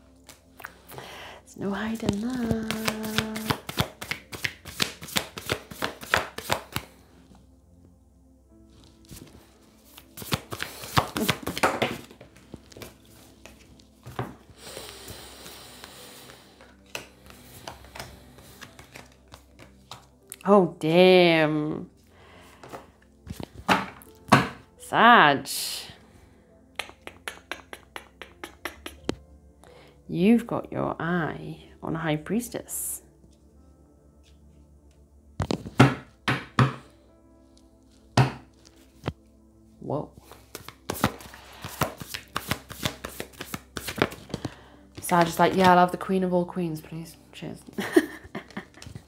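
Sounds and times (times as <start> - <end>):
faint background music: 0.0 - 49.0
cards being shuffled: 2.0 - 7.0, 8.8 - 15.1, 15.8 - 20.4, 22.6 - 24.5, 40.2 - 45.8, 48.3 - 49.0
cards tapping on a table: 2.5 - 6.9, 10.2 - 12.2, 35.4 - 36.8.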